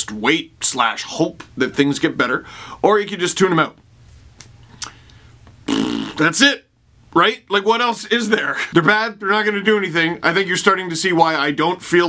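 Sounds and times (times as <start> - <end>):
faint mouth clicks: 4.4 - 5.2
man lip-flutter blowing air: 4.7 - 6.2.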